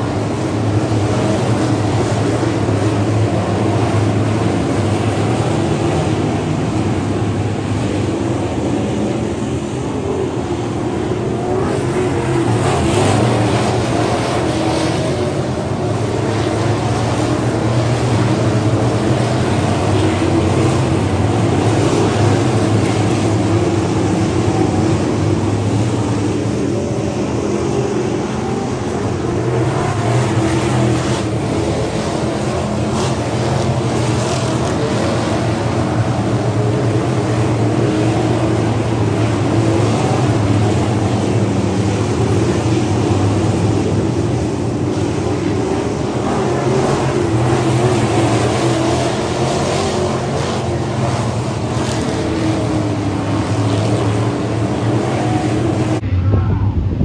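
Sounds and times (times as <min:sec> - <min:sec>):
race car engines droning: 0:00.0 - 0:57.0.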